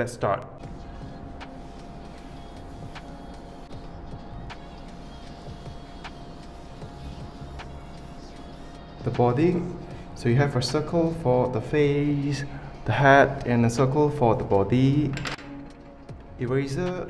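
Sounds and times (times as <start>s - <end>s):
pencil scratching on paper: 0.7s - 3.6s.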